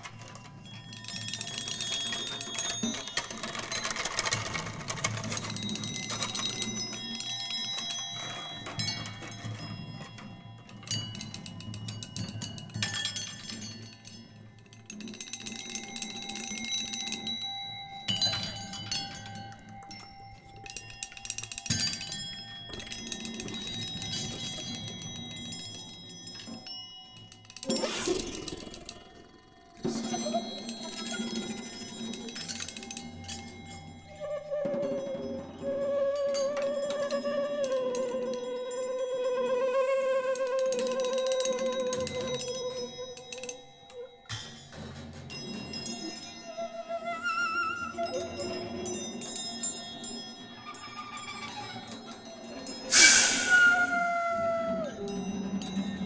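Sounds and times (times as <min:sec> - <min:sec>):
ringing chime-like percussion: 0:00.0 - 0:56.0.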